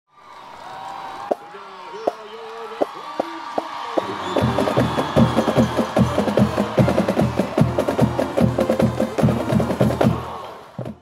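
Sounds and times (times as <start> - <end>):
fast drum beat: 3.2 - 11.0.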